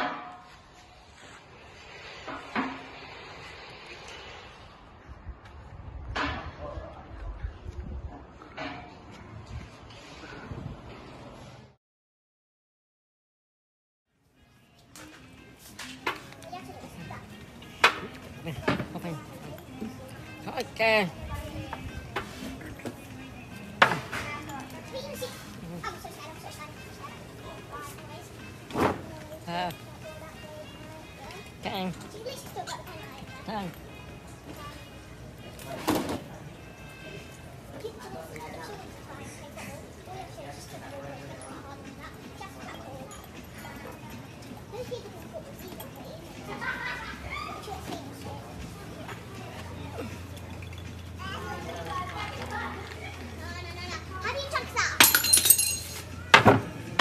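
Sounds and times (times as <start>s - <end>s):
people talking at a table: 16.0s - 57.0s.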